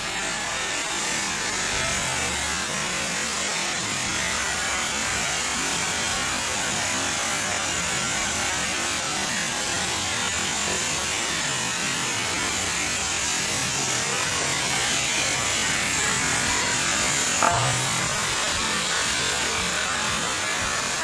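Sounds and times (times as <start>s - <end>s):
fireworks spraying sparks hissing: 0.0s - 21.0s.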